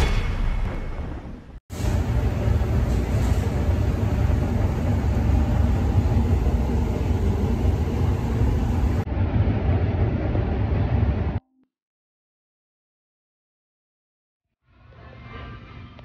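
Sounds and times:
loud steady rumbling: 0:01.0 - 0:11.4.

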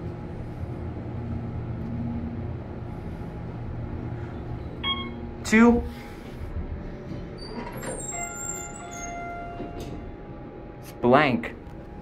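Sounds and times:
elevator arrival chime: 0:04.6 - 0:05.5, 0:07.4 - 0:10.3.

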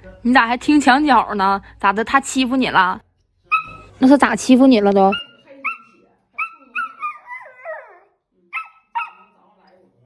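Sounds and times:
puppy whining: 0:03.5 - 0:04.0, 0:05.1 - 0:09.4.

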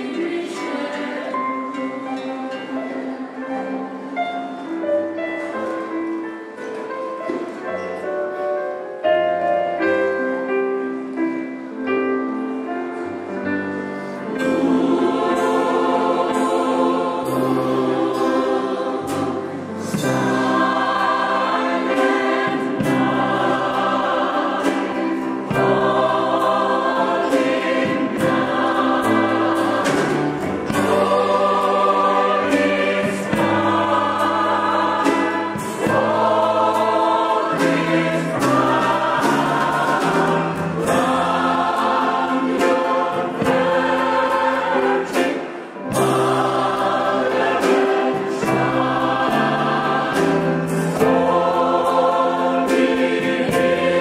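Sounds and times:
mixed choir singing in harmony: 0:00.0 - 0:54.0.

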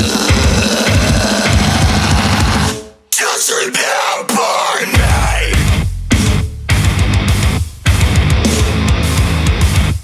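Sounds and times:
rapid bass drum and snare: 0:00.0 - 0:02.7, 0:05.0 - 0:10.0
metalcore band playing: 0:00.0 - 0:10.0.

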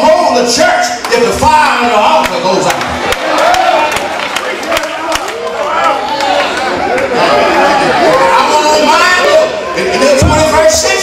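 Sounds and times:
preacher's amplified voice: 0:00.0 - 0:03.1, 0:07.1 - 0:11.0
congregation calling out responses: 0:00.0 - 0:11.0.

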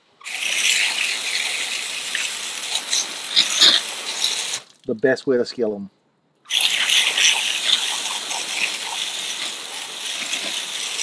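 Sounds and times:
hose nozzle water jet hissing: 0:00.2 - 0:04.9, 0:06.5 - 0:11.0
water spatters: 0:00.2 - 0:05.0, 0:06.5 - 0:11.0.

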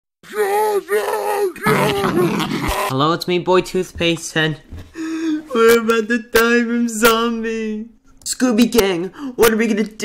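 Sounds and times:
person groaning like a zombie: 0:00.4 - 0:03.0.

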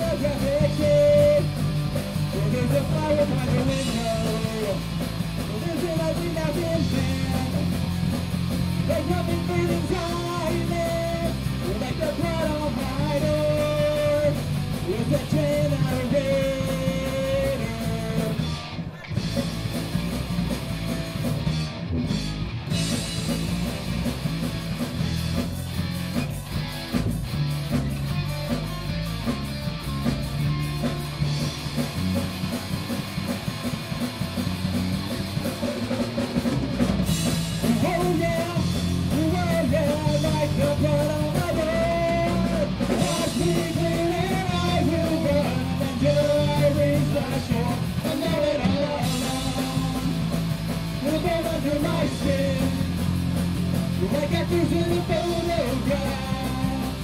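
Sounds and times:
rock band playing loudly: 0:00.0 - 0:57.0.

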